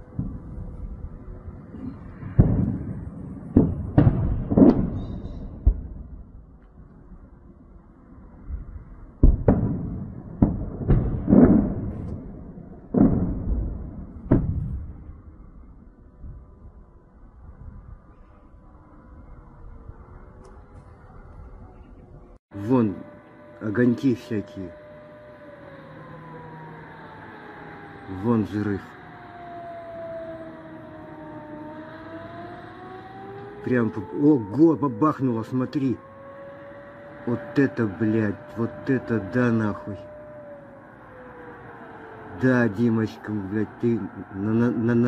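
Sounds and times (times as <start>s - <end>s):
air-raid siren wailing: 0.0s - 45.0s
explosions booming: 1.7s - 6.4s, 9.2s - 15.4s.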